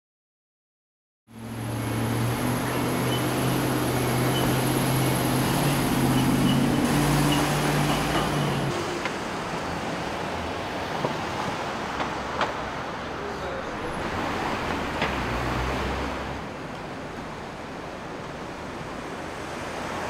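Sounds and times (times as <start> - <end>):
city street traffic: 1.3 - 20.0
vehicle engine hum: 1.3 - 20.0.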